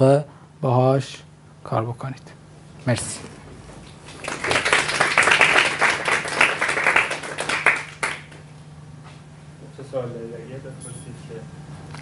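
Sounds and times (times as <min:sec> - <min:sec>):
low room hum: 0:00.0 - 0:12.0
audience applauding: 0:04.0 - 0:08.4.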